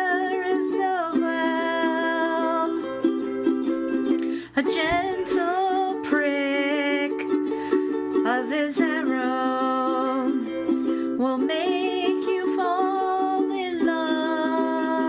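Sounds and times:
woman singing: 0.0 - 3.3, 4.1 - 15.0
electric ukulele strumming: 0.0 - 15.0.

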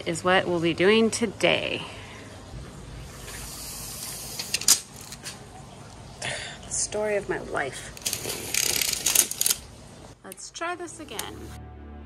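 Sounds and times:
tape measure blade clattering: 4.0 - 5.4, 8.0 - 9.6.

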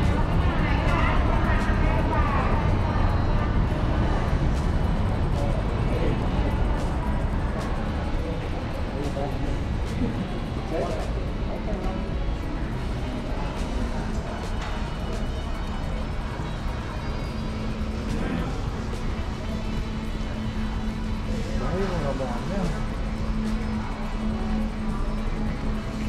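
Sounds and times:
background music: 0.0 - 26.0
distant voices: 0.0 - 26.0
low rumble of concourse: 0.0 - 26.0.

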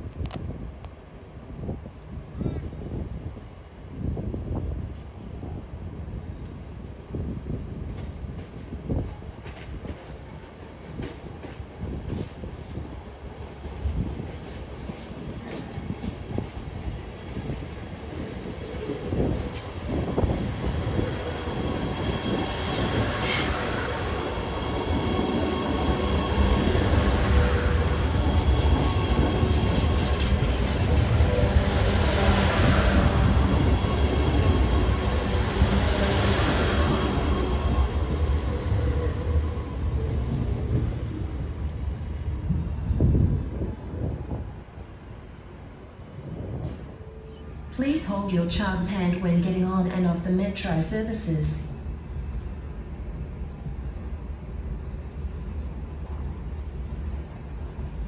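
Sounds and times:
electric train rumbling past: 2.8 - 58.0.

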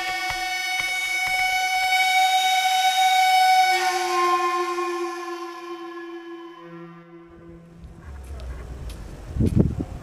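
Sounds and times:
loud drone of held tones: 0.0 - 8.8.

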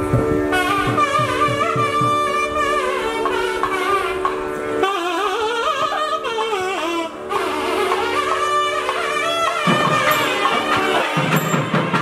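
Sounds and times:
double-reed melody: 0.0 - 12.0
steady drone: 0.0 - 12.0
regular drum beat: 0.1 - 2.6, 7.7 - 12.0.

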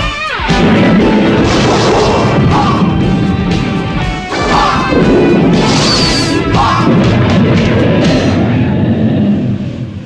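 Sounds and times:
heavy rock music: 0.0 - 9.5.

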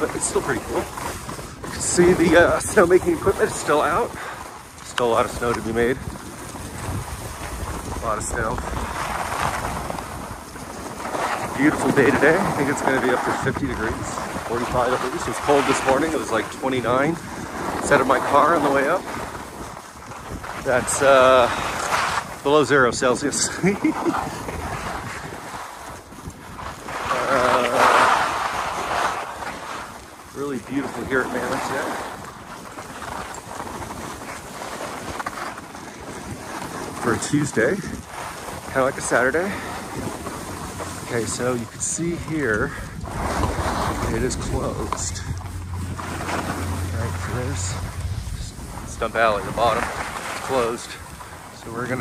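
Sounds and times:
skis sliding over snow: 0.0 - 52.0
wind rushing over microphone: 0.0 - 52.0.

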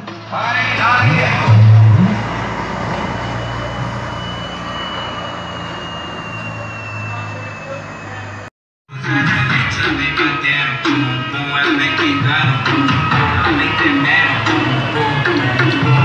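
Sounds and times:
muffled music from sound system: 0.0 - 2.2, 8.9 - 16.0
street noise: 0.0 - 16.0
faint high whine: 1.1 - 8.5.

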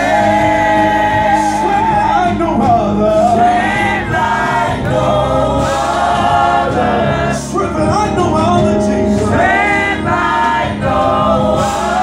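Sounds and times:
man singing lead: 0.0 - 4.2
choir singing: 0.0 - 7.6, 9.1 - 12.0
low accompaniment: 0.0 - 12.0.

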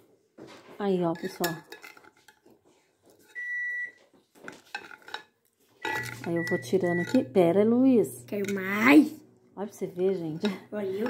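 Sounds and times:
plastic container and utensils clinking: 0.4 - 3.5, 4.2 - 7.4
electronic beep: 5.8 - 7.1.

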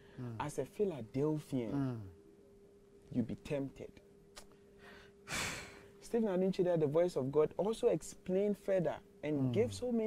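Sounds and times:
faint steady hum: 0.0 - 10.0
man sighing breath: 4.8 - 5.9
man talking: 6.0 - 10.0.

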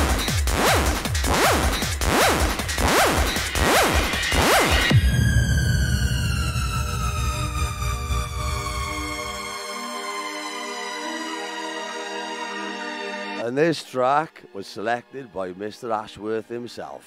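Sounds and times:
heavy bass: 0.0 - 9.6
electronic dance music: 0.0 - 10.9
falling synth tone: 1.4 - 10.3
sweeping synth pattern: 1.4 - 13.2.

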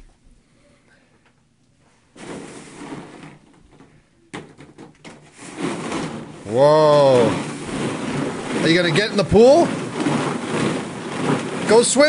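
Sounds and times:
plastic balls clattering: 2.2 - 12.0.

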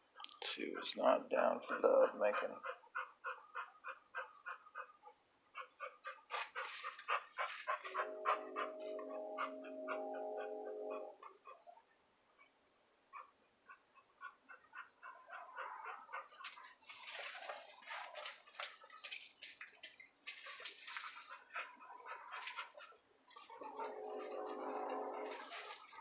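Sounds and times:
chickens clucking: 0.6 - 11.7.

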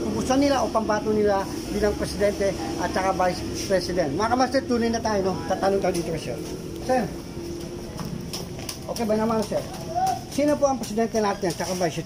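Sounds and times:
market background noise: 0.0 - 12.0.

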